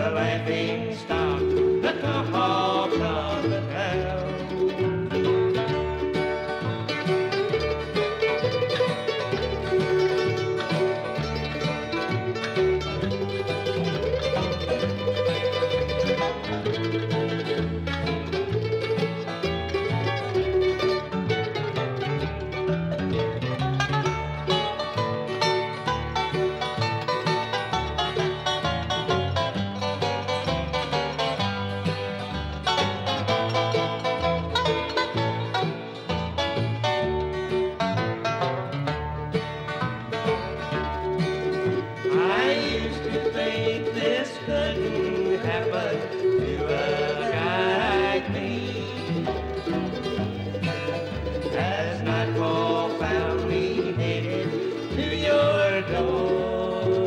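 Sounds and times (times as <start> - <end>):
bluegrass band playing: 0.0 - 57.0
fast picked banjo: 0.0 - 57.0.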